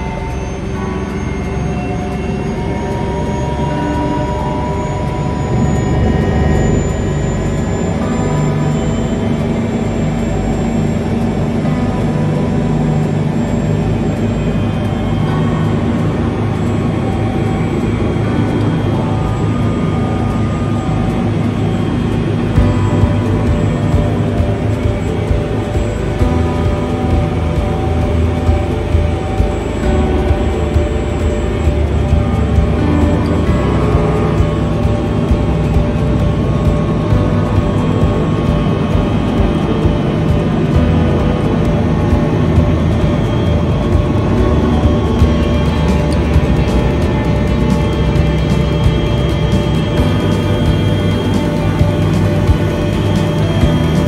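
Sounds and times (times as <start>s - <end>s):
helicopter engine and rotor: 0.0s - 54.0s.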